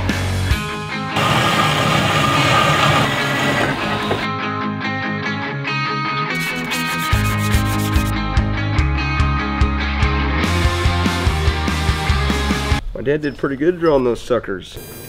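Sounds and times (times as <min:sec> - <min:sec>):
rock music: 0:00.0 - 0:12.8
band saw cutting steel: 0:01.2 - 0:04.3.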